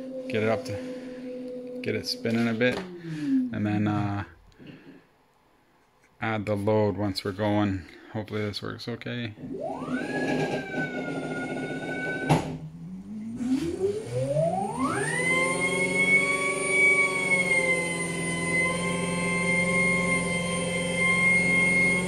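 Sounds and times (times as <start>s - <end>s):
high electric motor whine: 0.0s - 4.2s, 9.5s - 22.0s.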